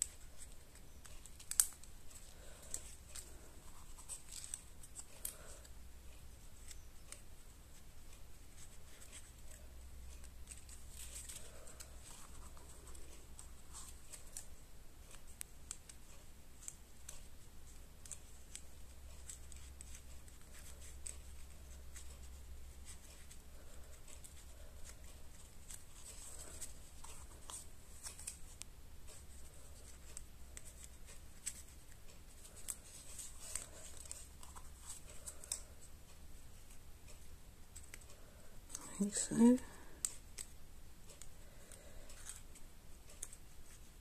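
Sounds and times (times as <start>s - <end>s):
cardstock rustling and clicking: 0.0s - 39.1s.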